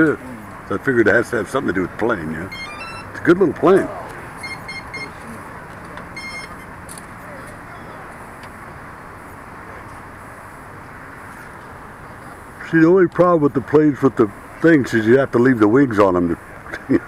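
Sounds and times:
steady background hiss: 0.0s - 17.0s
short electronic beeps: 2.5s - 5.4s, 6.1s - 6.8s.

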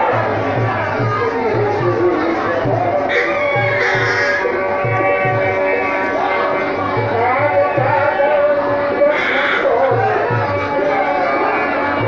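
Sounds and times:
low drum beats: 0.0s - 11.3s.

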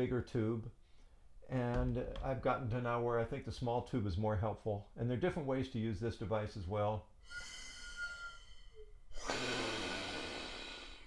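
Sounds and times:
air rushing through tube: 7.2s - 11.0s
breath whistling through plastic tube: 7.2s - 11.0s.

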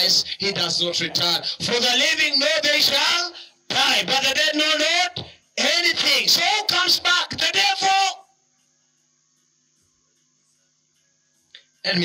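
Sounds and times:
man's amplified voice: 0.0s - 8.2s.

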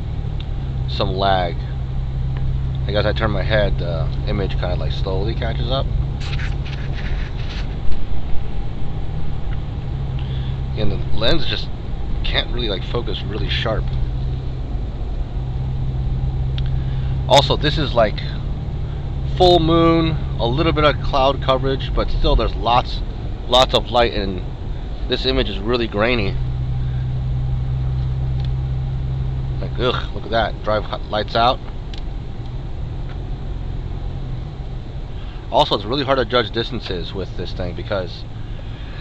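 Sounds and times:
car cabin drone: 0.0s - 39.0s
road hiss: 0.0s - 39.0s.

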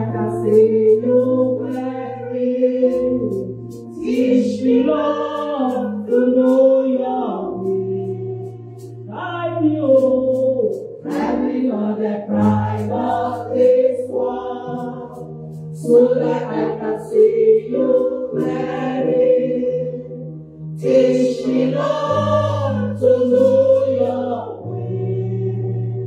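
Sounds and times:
woman singing gospel song: 0.0s - 8.4s, 9.1s - 15.1s.

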